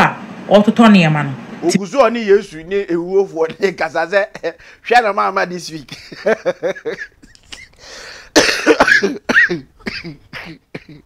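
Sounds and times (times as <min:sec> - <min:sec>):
man laughing hard: 0:05.8 - 0:10.2
man coughing: 0:05.8 - 0:11.0.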